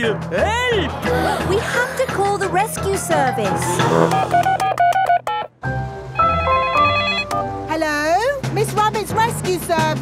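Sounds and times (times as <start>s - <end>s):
electronic tone melody: 3.6s - 5.5s, 6.1s - 7.4s.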